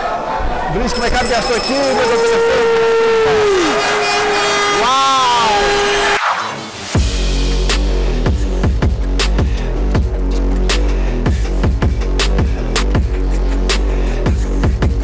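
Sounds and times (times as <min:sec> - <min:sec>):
crowd noise: 0:00.0 - 0:06.2
held tone: 0:00.9 - 0:03.1
drum and bass music: 0:03.4 - 0:15.0.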